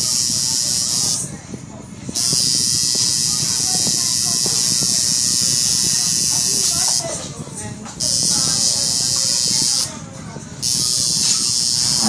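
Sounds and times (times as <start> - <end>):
tattoo machine buzzing: 0.0 - 1.2, 2.1 - 7.2, 8.0 - 9.9, 10.6 - 12.0.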